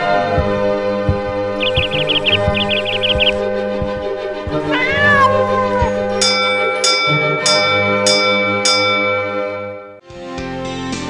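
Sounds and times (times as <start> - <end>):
background music: 0.0 - 8.8
cat meowing: 4.7 - 5.8.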